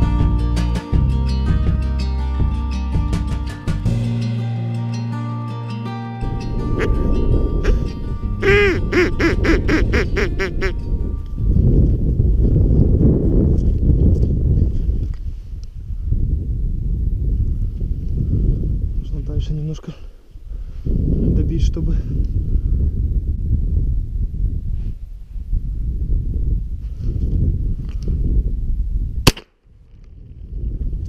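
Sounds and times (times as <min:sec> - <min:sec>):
wind rumble on microphone: 0:00.0 - 0:03.4, 0:06.2 - 0:31.0
music track: 0:00.0 - 0:11.4
duck quacking: 0:08.4 - 0:10.8.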